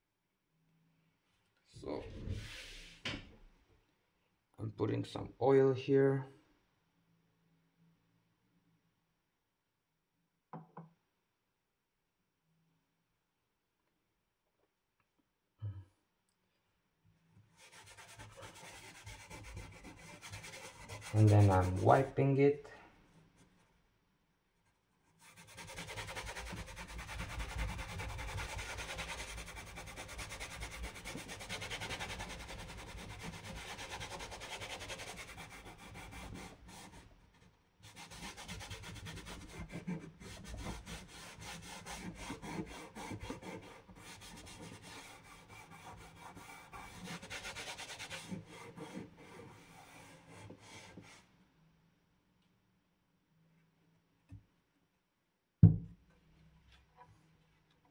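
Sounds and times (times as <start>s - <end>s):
cloth rubbing on wood: 17.6s - 22.1s, 37.8s - 51.2s.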